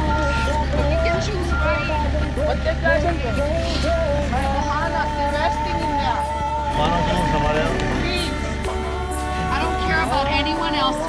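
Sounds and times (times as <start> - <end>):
people talking and calling: 0.0 - 11.0.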